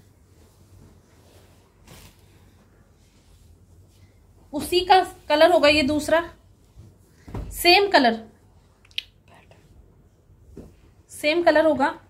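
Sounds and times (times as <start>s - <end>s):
fabric rustling: 0.0s - 8.6s.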